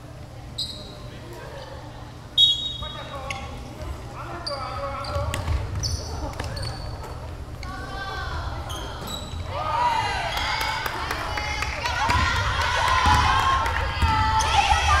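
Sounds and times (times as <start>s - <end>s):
sneaker squeaks: 0.5s - 1.2s, 2.4s - 9.7s
basketball bouncing: 5.2s - 6.8s, 13.0s - 15.0s.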